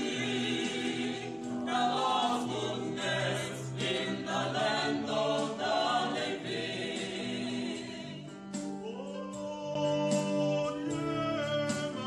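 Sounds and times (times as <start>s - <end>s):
group singing a psalm: 0.0s - 9.0s.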